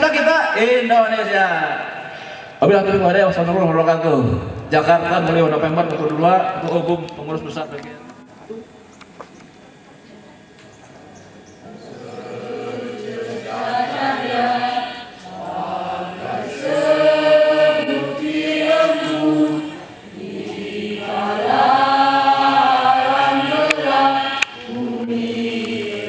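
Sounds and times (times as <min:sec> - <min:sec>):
singers breathing: 0:02.0 - 0:02.6
mixed choir singing: 0:11.6 - 0:26.0.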